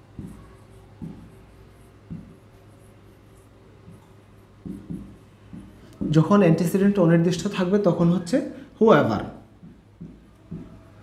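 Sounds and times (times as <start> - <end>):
soft marker taps: 0.0 - 6.8, 9.5 - 11.0
marker rubbing on board: 0.0 - 6.9, 9.4 - 11.0.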